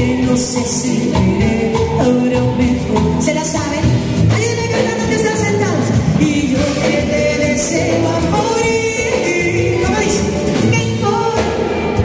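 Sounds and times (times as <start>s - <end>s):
group singing: 0.0s - 3.4s, 6.1s - 12.0s
bass guitar: 0.0s - 12.0s
drums: 0.0s - 12.0s
electric guitar: 0.0s - 12.0s.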